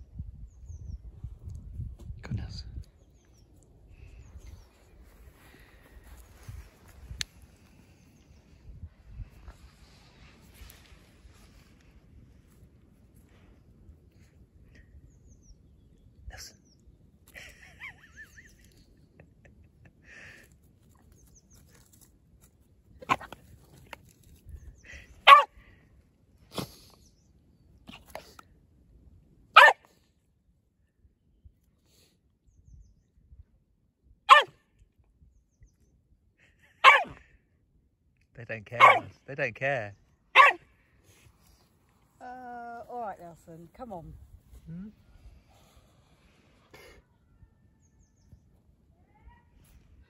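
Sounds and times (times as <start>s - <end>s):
small dog barking: 25.2s - 25.6s, 29.6s - 29.9s, 34.3s - 34.6s, 36.8s - 37.2s, 38.8s - 39.2s, 40.3s - 40.7s.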